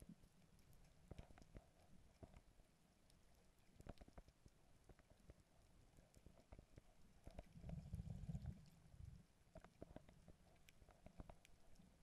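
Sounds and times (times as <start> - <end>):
soft clicks underwater: 0.0 - 12.0
muffled underwater rumble: 7.3 - 9.4.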